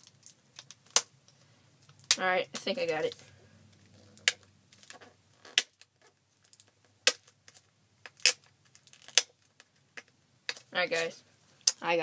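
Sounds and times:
shrink-wrap crackling: 1.8 - 9.7.

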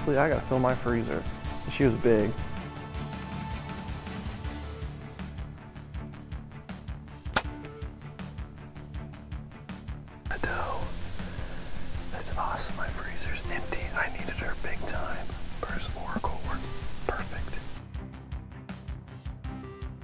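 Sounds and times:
background music: 0.0 - 20.0
man whispering: 10.3 - 11.4, 12.0 - 17.8.

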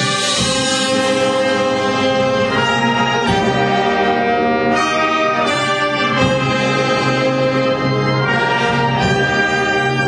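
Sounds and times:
wind band playing brass chords: 0.0 - 10.0.

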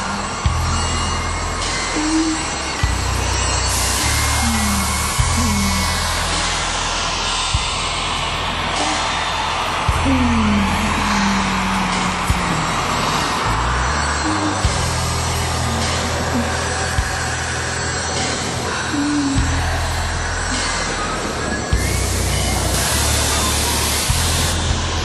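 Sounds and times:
held low bass notes: 0.0 - 7.7, 18.9 - 21.0
crowd noise: 0.0 - 25.0
low bass note: 4.2 - 6.0.

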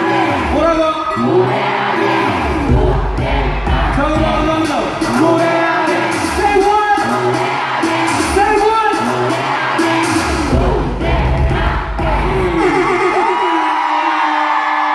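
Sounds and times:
hip-hop music through pa: 0.0 - 14.9
person rapping vocals: 2.7 - 7.4, 10.5 - 12.7
audience whooping: 12.4 - 14.9.

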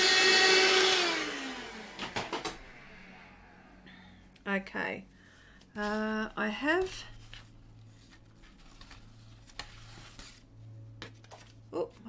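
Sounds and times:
low hum: 1.4 - 12.0.

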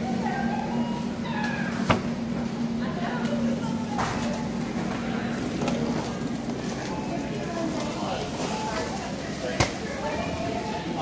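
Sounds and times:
indistinct voices: 0.0 - 11.0
store background noise: 0.0 - 11.0.

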